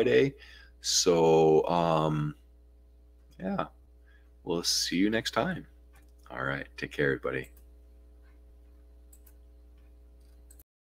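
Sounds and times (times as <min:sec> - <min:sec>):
faint electrical hum: 0:00.0 - 0:10.6
soft clicks: 0:05.9 - 0:06.4, 0:07.4 - 0:10.6.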